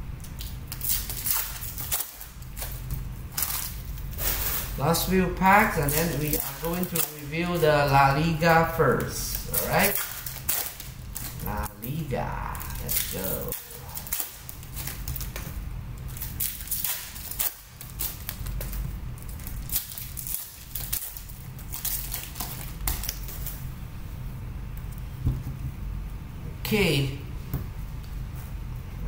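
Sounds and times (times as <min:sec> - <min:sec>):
wrappers crinkling and tearing: 0:00.2 - 0:23.7.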